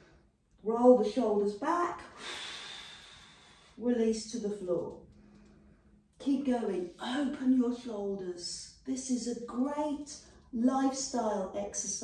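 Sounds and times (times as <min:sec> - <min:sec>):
woman exhaling: 0:02.1 - 0:03.8.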